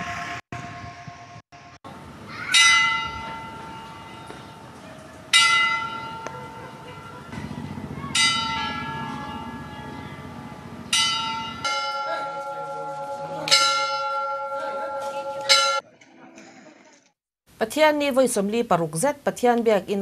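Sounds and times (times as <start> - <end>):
church bell ringing: 2.5 - 7.3, 8.1 - 15.8.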